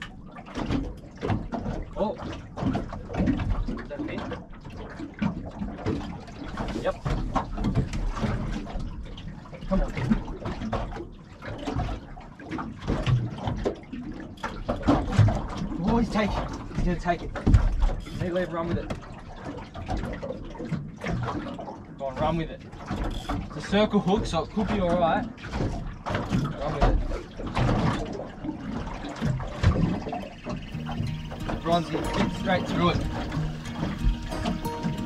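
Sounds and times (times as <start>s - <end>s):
waves lapping against boat hull: 0.0s - 35.0s
wind rumbling on microphone: 27.5s - 35.0s.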